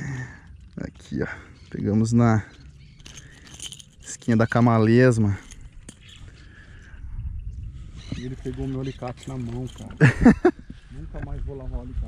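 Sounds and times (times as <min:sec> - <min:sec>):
wind buffeting microphone: 0:05.1 - 0:12.0.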